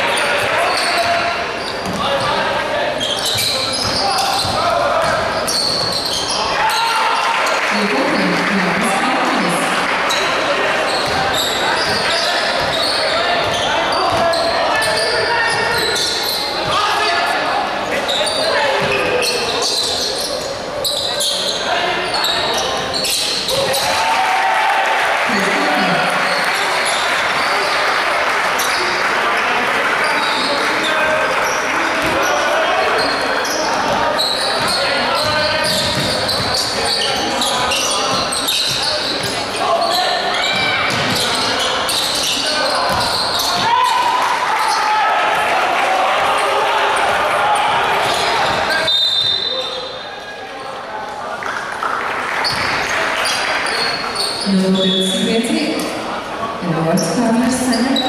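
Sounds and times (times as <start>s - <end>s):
crowd of voices: 0.0s - 58.0s
basketball bouncing on court: 1.8s - 2.3s, 3.2s - 6.2s, 10.9s - 15.7s, 32.0s - 32.3s, 33.7s - 36.7s, 37.6s - 39.4s, 40.5s - 42.0s, 42.8s - 43.8s.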